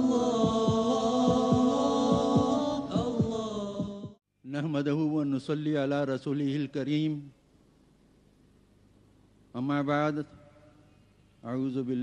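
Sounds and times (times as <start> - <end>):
chant-like vocal tones: 0.0 - 4.2
low thumping beat: 0.0 - 4.2.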